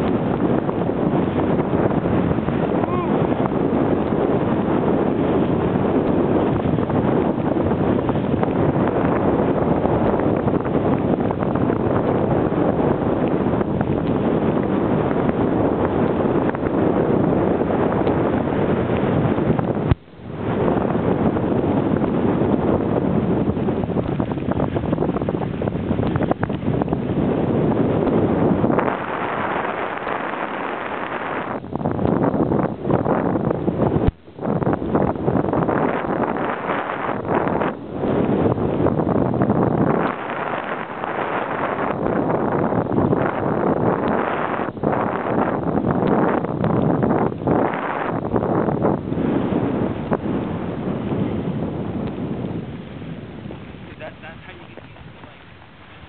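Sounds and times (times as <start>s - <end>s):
wind on microphone: 0.0s - 56.0s.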